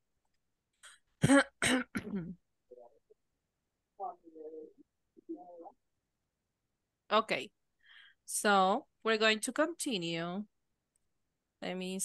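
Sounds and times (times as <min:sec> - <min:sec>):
person clearing throat: 0:01.2 - 0:02.4.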